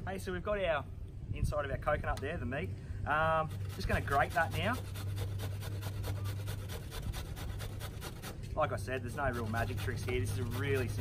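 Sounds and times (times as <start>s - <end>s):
coconut grated on metal grater: 3.5s - 8.4s, 9.1s - 11.0s.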